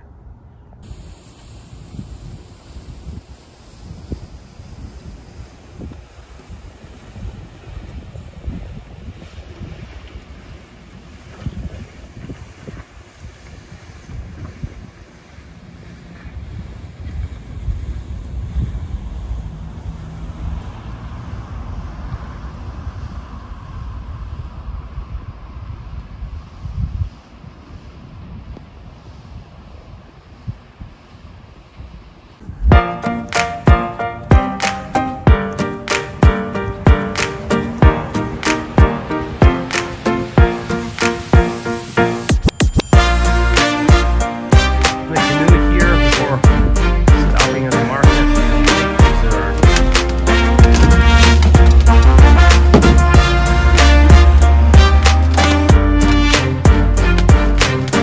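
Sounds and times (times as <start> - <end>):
wind buffeting microphone: 0.0 - 33.8, 45.4 - 58.0.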